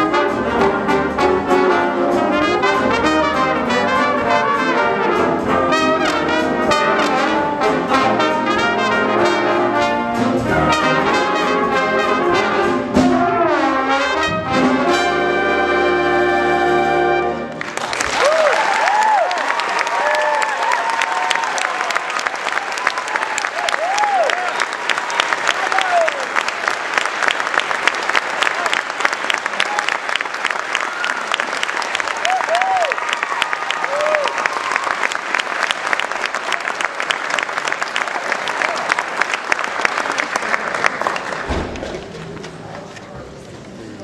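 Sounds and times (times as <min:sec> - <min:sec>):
audience applauding: 0:17.5 - 0:42.6
whoops and cheers: 0:18.0 - 0:26.3, 0:30.7 - 0:31.5, 0:32.1 - 0:35.2.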